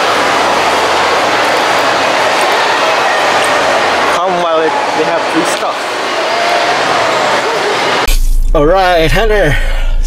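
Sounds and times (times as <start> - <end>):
crowd hubbub in echoing hall: 0.0 - 8.1.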